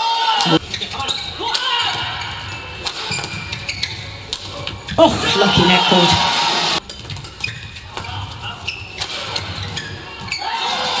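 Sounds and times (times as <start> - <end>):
shoes on court floor: 2.9 - 10.4.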